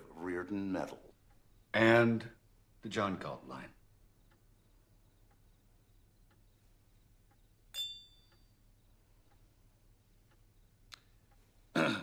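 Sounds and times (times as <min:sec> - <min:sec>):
wine glasses clinking: 0:07.7 - 0:08.3.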